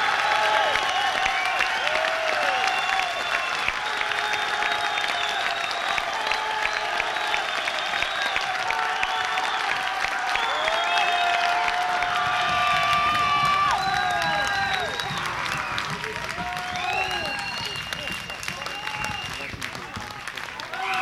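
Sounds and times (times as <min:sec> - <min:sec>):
audience cheering: 0:00.0 - 0:21.0
audience clapping: 0:00.0 - 0:21.0.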